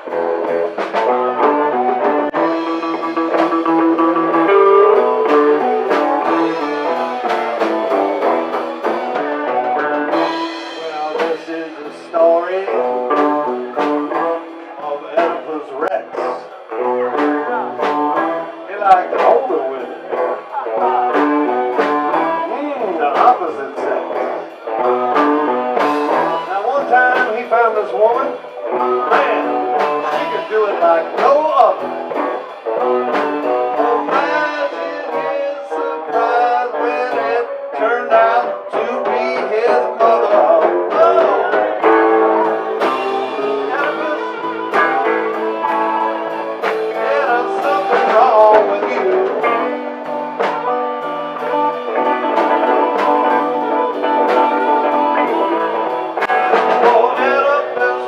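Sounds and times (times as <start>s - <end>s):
bass: 0.0s - 58.0s
electric guitar: 0.0s - 58.0s
steady drum beat: 0.0s - 58.0s.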